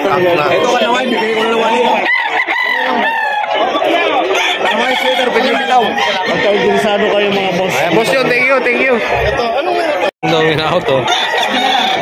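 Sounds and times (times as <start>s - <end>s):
people talking: 0.0s - 12.0s
roosters crowing: 0.0s - 12.0s.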